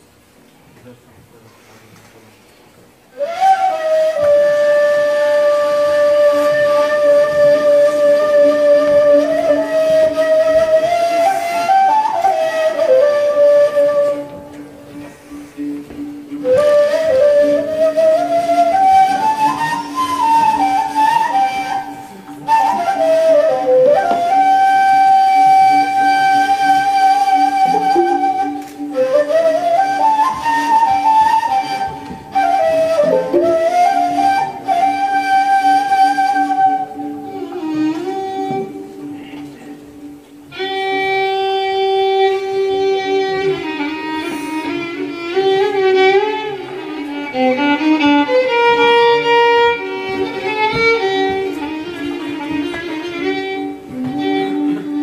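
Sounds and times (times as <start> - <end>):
reed flute solo: 3.1 - 55.0.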